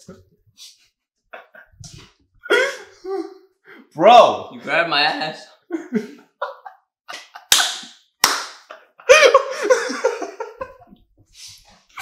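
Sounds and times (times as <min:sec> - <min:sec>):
man laughing hard: 0:08.7 - 0:10.9.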